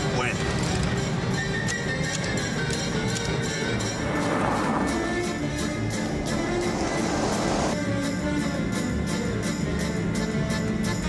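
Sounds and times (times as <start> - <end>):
film score music with beat: 0.4 - 11.0.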